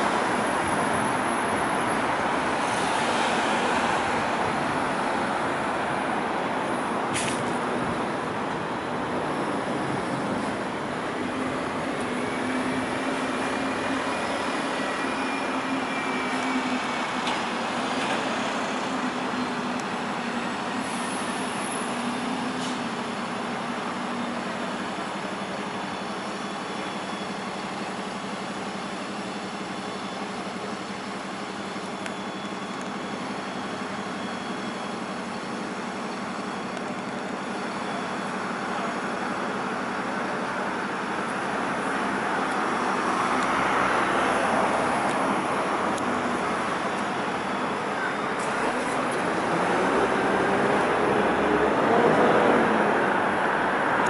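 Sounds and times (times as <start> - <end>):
road traffic: 0.0 - 54.0.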